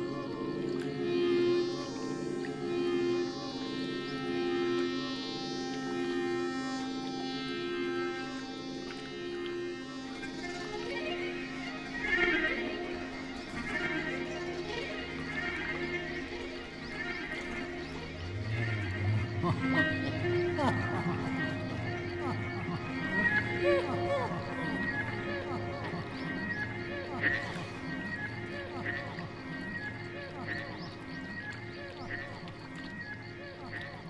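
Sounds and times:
sustained drone tones: 0.0 - 34.0.

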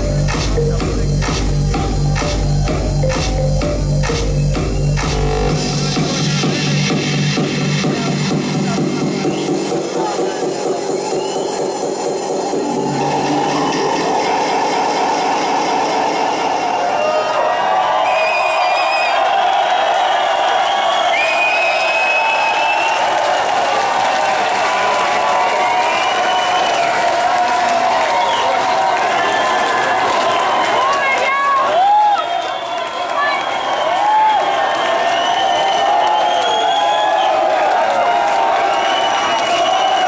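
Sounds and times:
techno music bass: 0.0 - 17.1
crowd cheering and shouting: 0.0 - 40.0.

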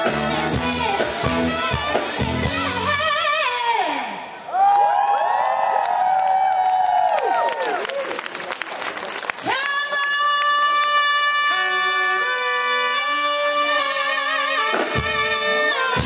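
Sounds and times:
soul-jazz band with horns: 0.0 - 3.4, 11.0 - 16.0.

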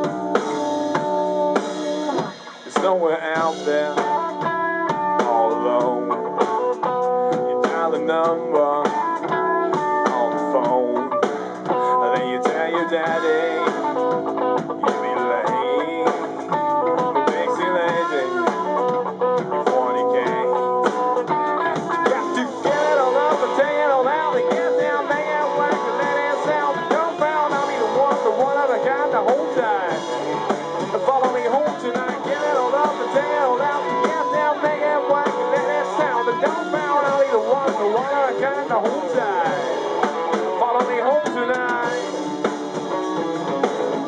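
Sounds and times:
guitar bending notes: 0.0 - 44.0
rock band playing: 0.0 - 44.0.

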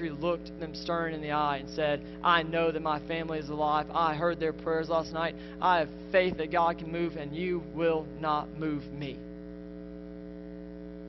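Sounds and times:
person speaking: 0.0 - 9.3
electrical mains hum: 0.0 - 11.0.

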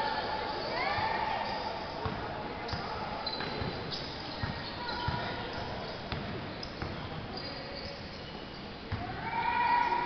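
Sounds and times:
crowd chatter in large hall: 0.0 - 10.0.

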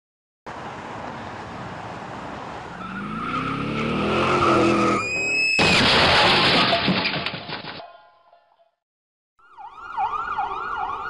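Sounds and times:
vehicle engine revving: 2.8 - 5.0
tyre screech: 2.8 - 6.8
loud crash: 5.2 - 7.8.

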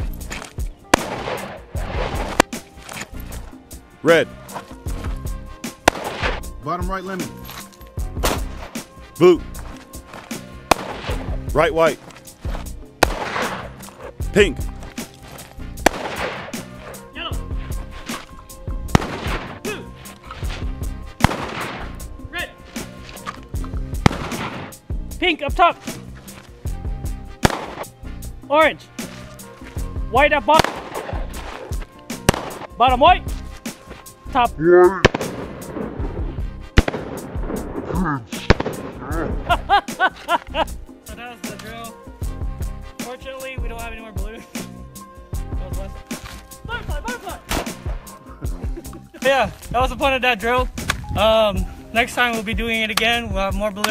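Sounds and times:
background music: 0.0 - 53.9
rifle shots: 0.9 - 2.6, 5.8 - 6.4, 10.7 - 11.2, 13.0 - 13.7, 15.8 - 16.6, 18.9 - 19.6, 21.2 - 22.0, 24.0 - 24.8, 27.4 - 27.9, 30.6 - 31.2, 32.3 - 32.8, 35.0 - 36.0, 36.8 - 37.7, 38.4 - 39.1.

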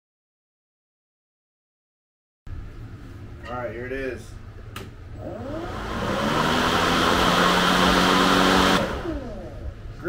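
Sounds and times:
cordless mower whirring: 5.2 - 9.6.

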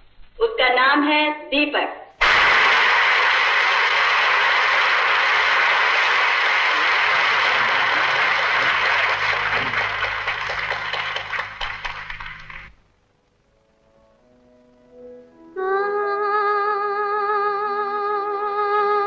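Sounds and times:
audience applauding: 2.2 - 12.8.

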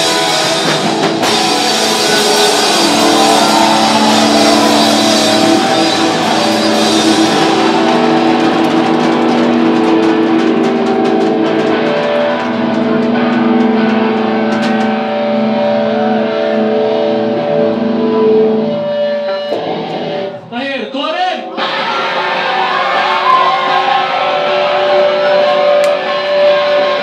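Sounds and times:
punk band playing: 0.0 - 27.0.

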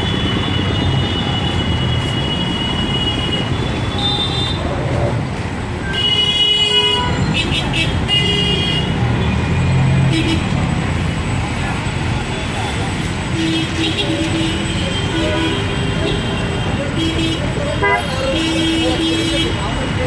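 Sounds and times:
chatter of passers-by: 4.4 - 6.0, 7.1 - 20.0
vehicle engines running: 8.9 - 20.0
car horn honks: 13.5 - 19.6.

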